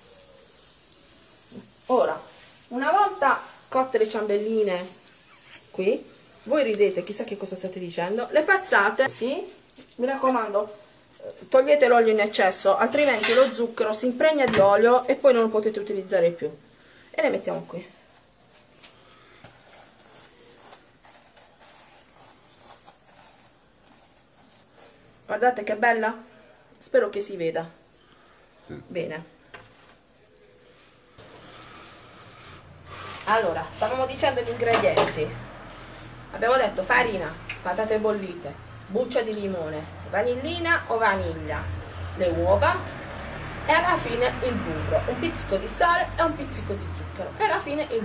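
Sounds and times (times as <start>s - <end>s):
doughnuts sizzling in hot oil: 0.0s - 48.0s
gritty sugar rustling: 18.0s - 25.7s, 29.6s - 34.6s.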